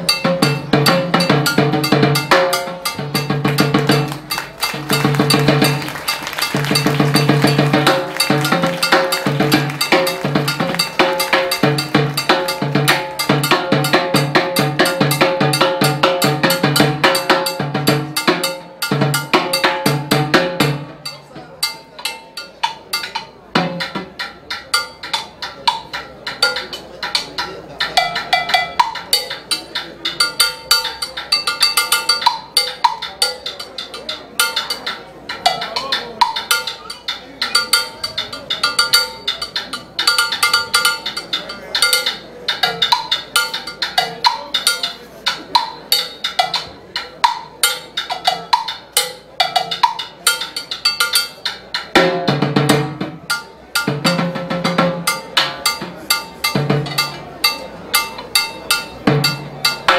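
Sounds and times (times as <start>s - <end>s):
cowbell strokes: 0.0s - 52.0s, 53.2s - 59.9s
timbales played with sticks: 0.0s - 59.9s.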